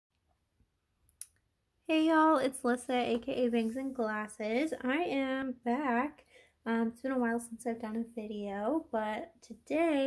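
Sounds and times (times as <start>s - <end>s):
woman speaking: 1.9s - 10.0s.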